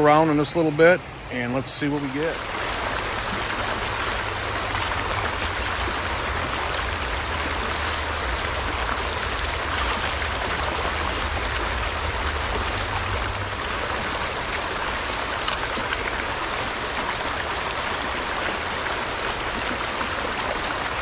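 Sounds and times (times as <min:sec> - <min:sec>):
creek water rushing over stones: 0:00.0 - 0:21.0.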